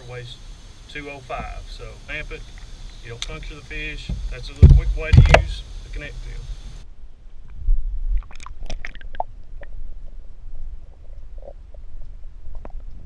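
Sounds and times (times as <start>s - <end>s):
muffled underwater rumble: 0.0s - 6.8s
underwater clicks and pops: 4.1s - 5.6s, 8.2s - 9.7s.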